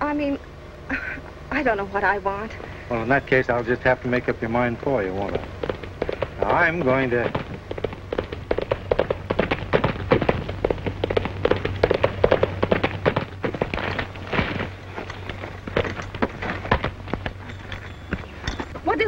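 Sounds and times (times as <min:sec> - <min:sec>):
low film soundtrack hum: 0:00.0 - 0:19.0
horse hoofbeats galloping: 0:03.0 - 0:19.0.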